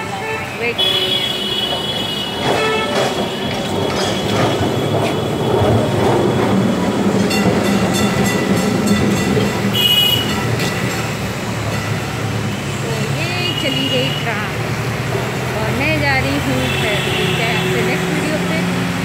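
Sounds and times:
city street traffic: 0:00.0 - 0:19.0
tram rumbling on rails: 0:00.0 - 0:19.0
rapid clicking of rails: 0:00.8 - 0:19.0.

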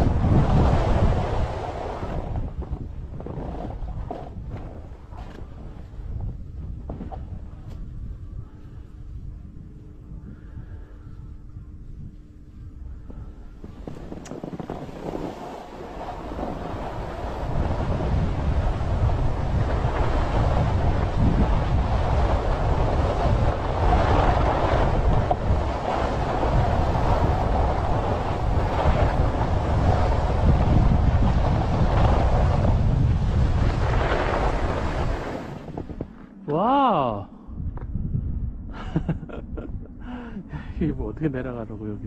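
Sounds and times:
skis scraping on snow: 0:00.0 - 0:06.0, 0:13.6 - 0:36.3
wind rushing over microphone: 0:00.0 - 0:42.0.

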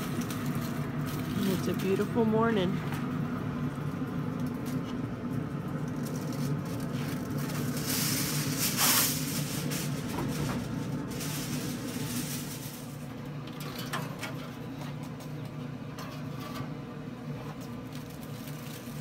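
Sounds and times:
hiss: 0:07.7 - 0:10.2.

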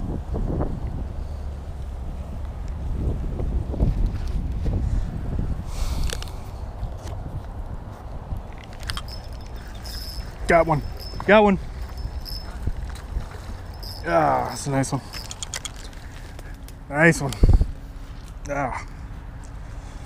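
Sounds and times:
wind buffeting microphone: 0:00.0 - 0:18.0
clicks and rustles: 0:08.3 - 0:17.4.

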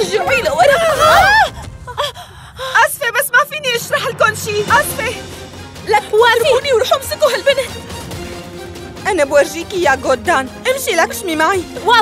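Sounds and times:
women crying out: 0:00.5 - 0:02.1.

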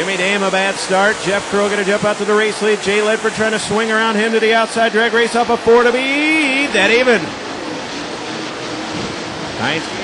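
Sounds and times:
race car engines roaring: 0:00.0 - 0:10.0.

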